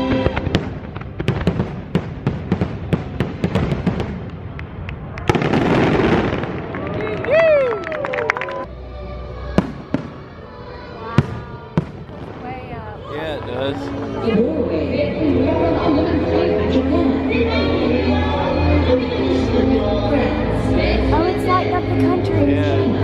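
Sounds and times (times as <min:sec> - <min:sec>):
fireworks whistling: 0:00.0 - 0:04.2
fireworks bangs and crackles: 0:00.0 - 0:07.6, 0:09.6 - 0:10.3, 0:11.1 - 0:14.3.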